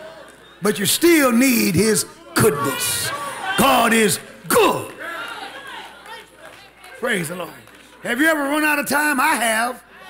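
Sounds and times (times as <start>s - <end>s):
preacher speaking: 0.6s - 5.0s, 7.0s - 9.8s
congregation calling out responses: 0.6s - 7.2s.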